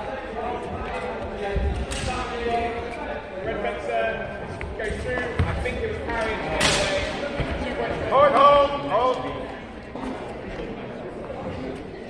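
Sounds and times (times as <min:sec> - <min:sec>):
many voices talking: 0:00.0 - 0:12.0.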